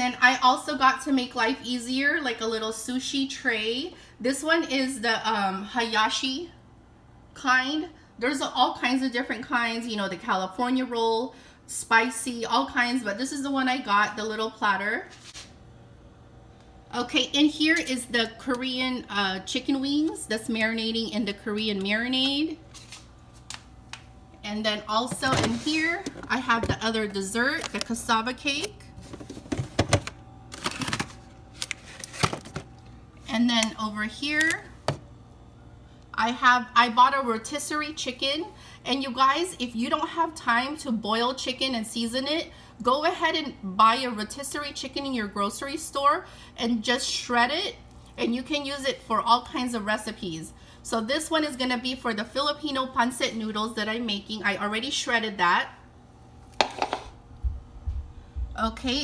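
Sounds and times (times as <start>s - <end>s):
packaging rustling: 30.5s - 32.7s.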